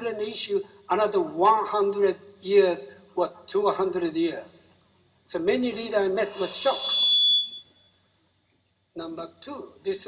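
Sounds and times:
high-pitched steady tone: 0:05.8 - 0:08.0.

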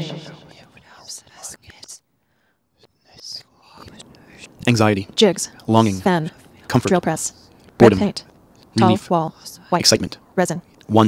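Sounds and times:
faint whispering voice: 0:00.0 - 0:02.0, 0:02.8 - 0:04.7, 0:08.6 - 0:09.9
person speaking: 0:03.1 - 0:10.0.

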